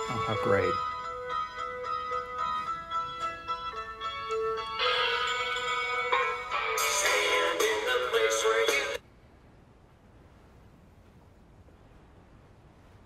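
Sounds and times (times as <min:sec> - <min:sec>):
film soundtrack music: 0:00.0 - 0:09.0.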